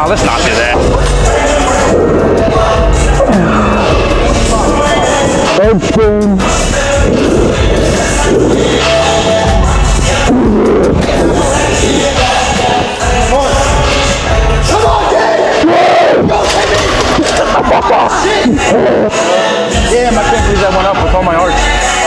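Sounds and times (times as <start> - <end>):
loud music with steady beat: 0.0 - 22.0.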